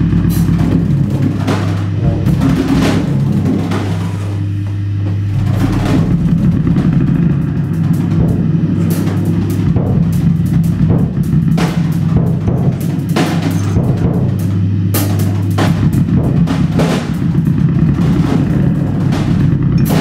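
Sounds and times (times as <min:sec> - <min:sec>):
drum and cymbal strokes: 0:00.0 - 0:20.0
low electric bass drone: 0:00.0 - 0:20.0.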